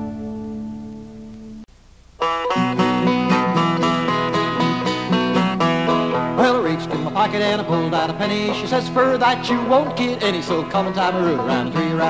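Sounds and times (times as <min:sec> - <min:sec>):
acoustic guitar picking: 0:00.0 - 0:01.6, 0:02.2 - 0:12.0
banjo picking: 0:02.2 - 0:12.0.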